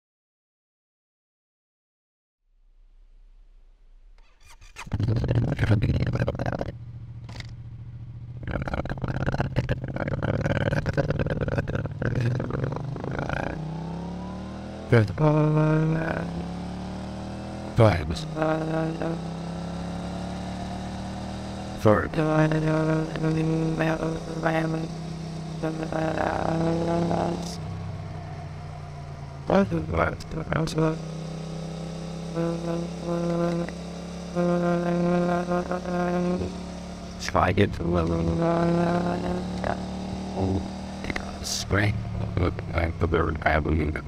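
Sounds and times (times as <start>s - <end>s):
warbling voice-like engine tones: 4.4s - 6.8s, 8.4s - 16.4s, 17.8s - 19.2s, 21.8s - 25.0s, 25.6s - 31.0s, 32.3s - 36.6s, 37.2s - 44.0s.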